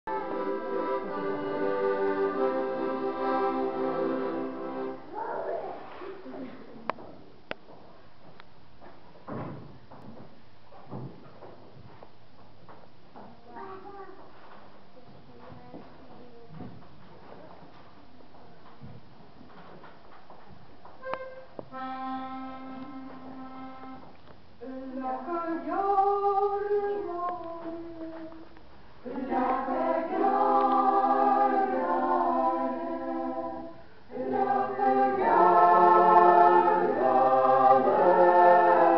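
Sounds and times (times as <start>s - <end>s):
accordion: 0.1s - 5.1s, 21.0s - 24.2s, 29.1s - 33.6s, 34.2s - 38.9s
accordion held notes: 0.1s - 5.1s, 21.0s - 24.1s
folk ensemble playing: 0.1s - 5.1s, 21.0s - 24.2s, 29.1s - 33.6s, 34.2s - 38.9s.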